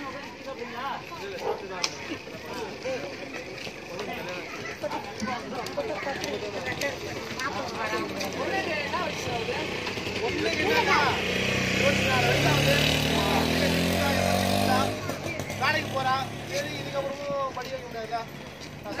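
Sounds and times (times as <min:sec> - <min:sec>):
people talking: 0:00.0 - 0:19.0
vehicle engine running: 0:02.2 - 0:19.0.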